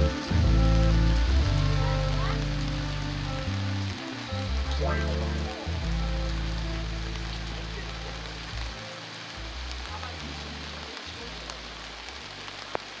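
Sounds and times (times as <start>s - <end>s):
heavy rain: 0.0s - 13.0s
music of low held notes: 0.0s - 13.0s.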